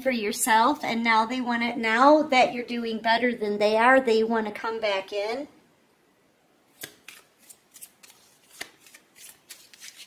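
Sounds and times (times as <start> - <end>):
cards being shuffled: 6.8 - 10.0.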